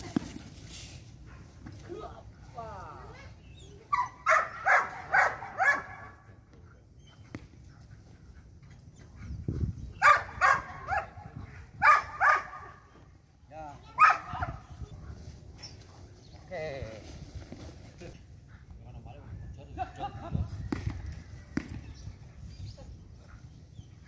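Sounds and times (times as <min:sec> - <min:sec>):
dog barking loudly: 0:03.9 - 0:06.1, 0:10.0 - 0:11.2, 0:11.8 - 0:12.7.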